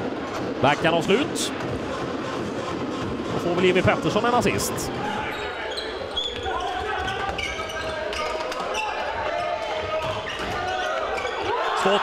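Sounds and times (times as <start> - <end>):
shoes squeaking on court floor: 5.2 - 11.7.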